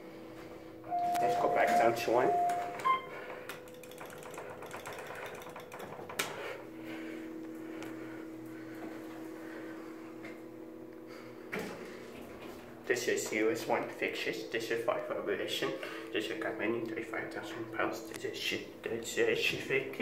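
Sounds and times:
elevator steady hum: 0.0 - 20.0
elevator mechanical rattle: 0.9 - 7.1.

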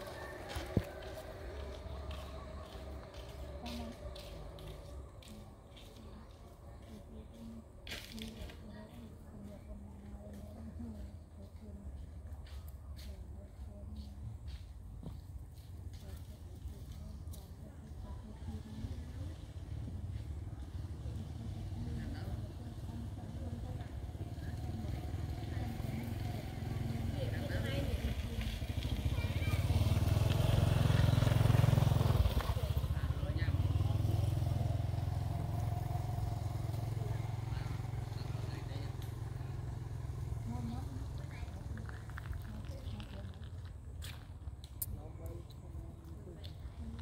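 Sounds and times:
vehicle engine rumbling: 0.0 - 47.0.

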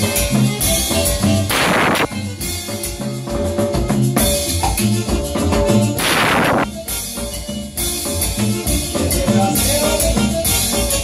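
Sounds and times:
electronic keyboard: 0.0 - 11.0.

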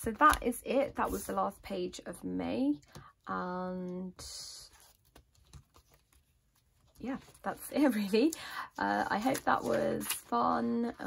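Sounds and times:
notebook pages flipping: 0.1 - 1.4, 4.7 - 10.4.

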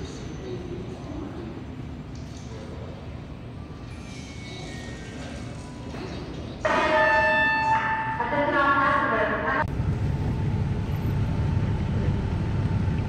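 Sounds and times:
hall crowd murmur: 0.0 - 9.7.

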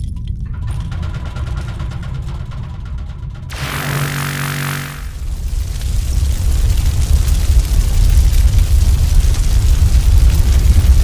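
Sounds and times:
fast mechanical clatter: 0.4 - 5.4
heavy low rumble: 0.5 - 11.0
laser beam hissing blast: 3.5 - 5.4.

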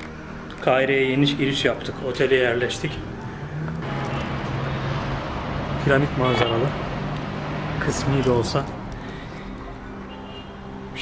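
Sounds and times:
rush of passing cars: 1.1 - 11.0.

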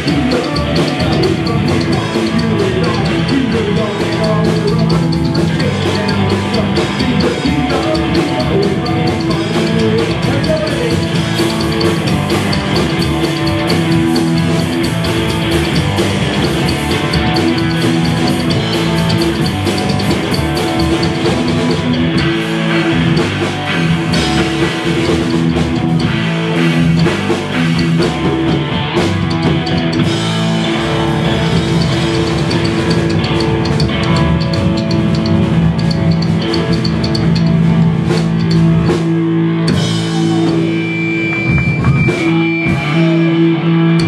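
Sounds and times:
drum kit: 0.0 - 44.0
electric guitar: 0.0 - 44.0
upright double bass: 0.0 - 44.0.

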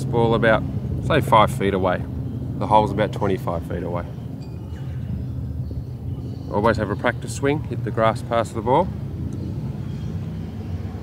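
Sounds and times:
low outdoor rumble: 0.0 - 11.0
faint high chirps: 4.0 - 6.9.

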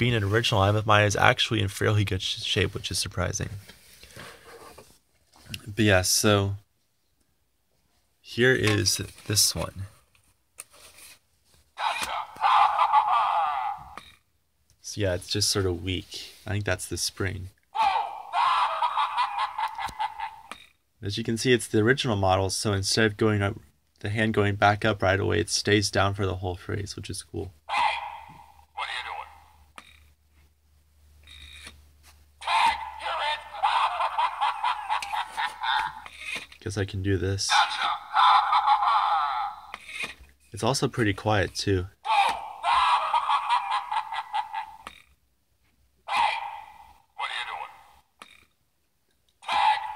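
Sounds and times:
tinny recorded voice phrase: 11.8 - 14.0, 24.3 - 29.6, 32.4 - 35.3, 36.7 - 39.7, 46.1 - 48.0, 49.4 - 49.9.

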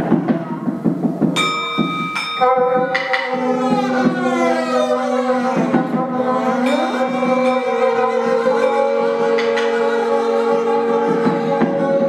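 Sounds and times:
irregular drum hits: 0.0 - 12.0
high steady ringing note: 1.4 - 12.0
bowed double bass: 2.8 - 12.0.

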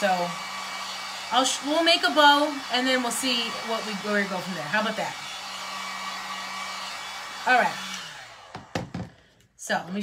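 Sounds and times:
heat gun blowing hot air: 0.0 - 9.2.

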